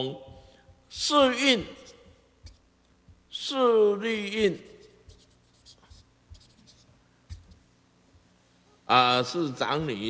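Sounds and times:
marker pen writing on paper: 1.0 - 3.2, 4.3 - 7.7.

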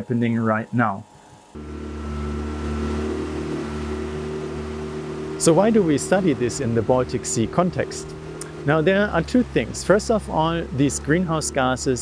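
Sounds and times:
outboard motor running: 0.0 - 12.0
wind: 0.0 - 12.0
water rushing: 1.6 - 12.0.

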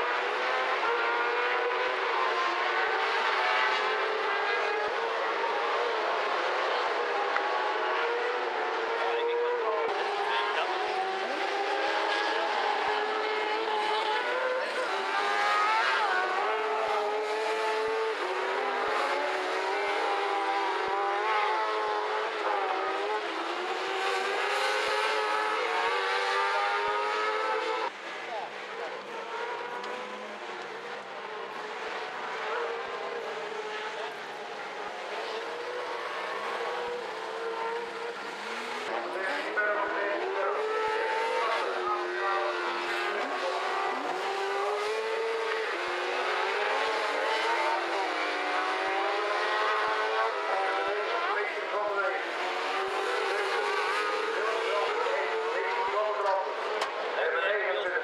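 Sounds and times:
racing buggy engines revving: 0.0 - 58.0.

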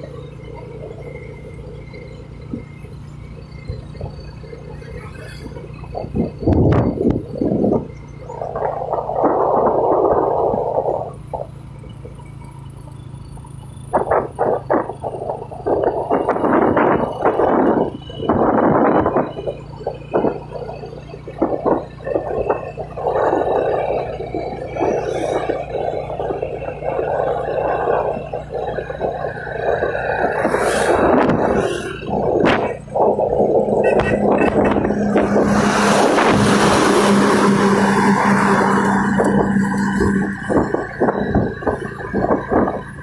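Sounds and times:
vehicle running noise: 0.0 - 43.0
wind buffeting phone microphone: 3.7 - 12.2, 13.8 - 43.0.

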